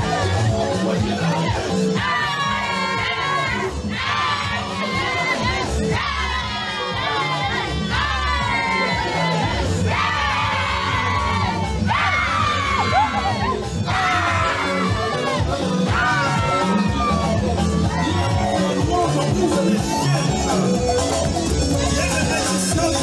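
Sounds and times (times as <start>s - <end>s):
crowd cheering and chanting: 0.0s - 23.0s
loud dance music: 0.0s - 23.0s.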